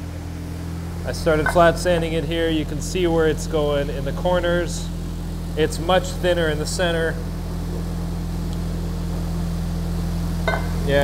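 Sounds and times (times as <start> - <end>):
parts tumbler humming: 0.0 - 11.0.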